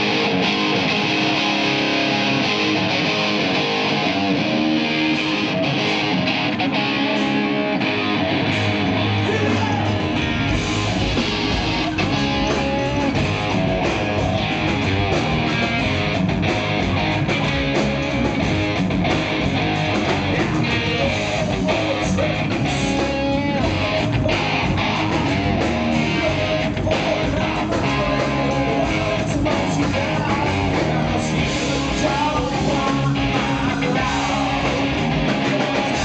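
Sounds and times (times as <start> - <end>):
drum kit: 0.0 - 36.0
electric guitars: 0.0 - 36.0.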